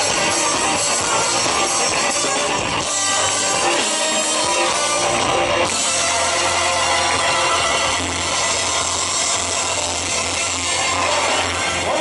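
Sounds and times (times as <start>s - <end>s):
bass: 0.0s - 12.0s
drums: 0.0s - 12.0s
electric guitars: 0.0s - 12.0s.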